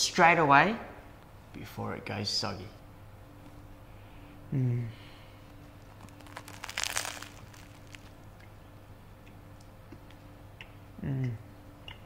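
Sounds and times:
faint chewing crunches: 0:05.4 - 0:08.6
bread roll crunching when bitten: 0:05.6 - 0:08.4.

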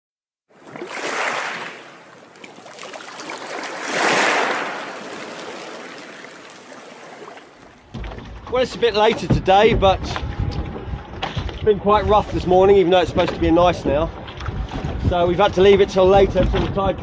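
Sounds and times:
rushing water sound effect: 0:00.6 - 0:08.2.

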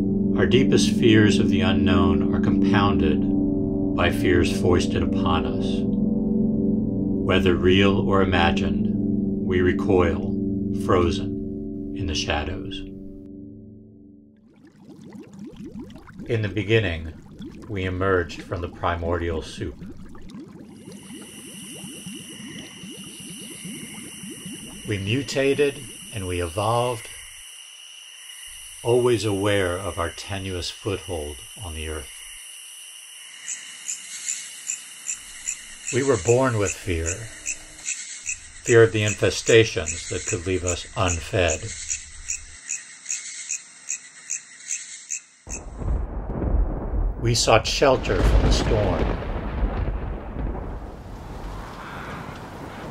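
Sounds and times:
liquid bubbling: 0:14.4 - 0:27.4
faint steady hiss: 0:15.8 - 0:32.4
cricket chirping: 0:19.9 - 0:46.8.

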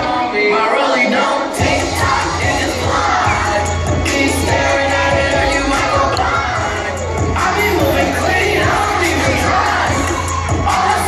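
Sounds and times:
audience shouting and cheering: 0:00.0 - 0:11.0
dance music with heavy bass: 0:00.0 - 0:11.0.

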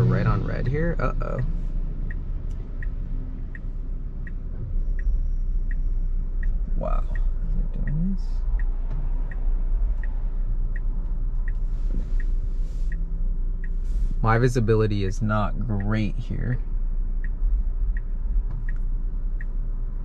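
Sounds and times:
car cabin hum: 0:00.0 - 0:20.0
turn signal ticking: 0:00.0 - 0:20.0.

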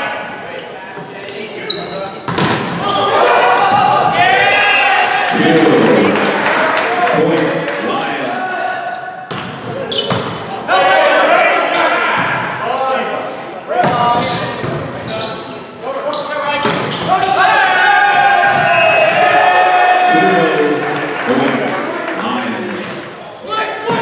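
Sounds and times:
volleyball hits: 0:02.3 - 0:03.0, 0:09.3 - 0:10.5
people shouting and cheering: 0:02.7 - 0:14.6, 0:15.9 - 0:24.0.

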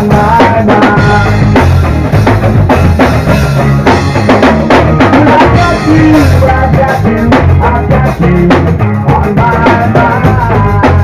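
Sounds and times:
drum kit: 0:00.0 - 0:11.0
rock band playing: 0:00.0 - 0:11.0.

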